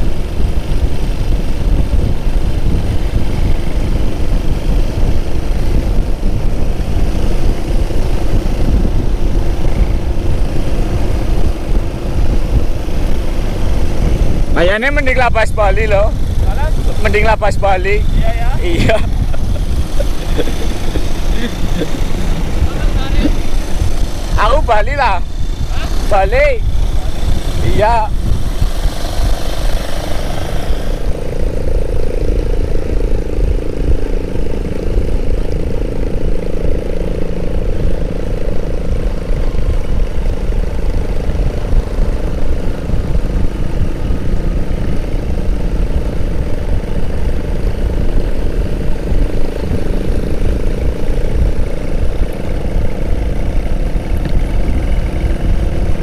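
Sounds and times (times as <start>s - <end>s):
motorcycle engine running: 0.0s - 56.0s
wind on microphone: 0.0s - 56.0s.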